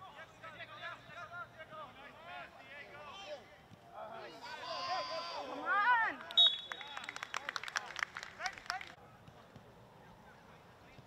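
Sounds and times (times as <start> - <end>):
players and spectators shouting: 2.1 - 6.5.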